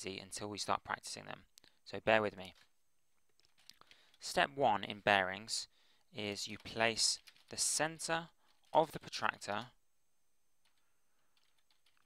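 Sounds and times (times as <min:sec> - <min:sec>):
soft keyboard keystrokes: 0:02.3 - 0:02.7, 0:03.3 - 0:04.2, 0:06.5 - 0:07.6, 0:10.6 - 0:12.0.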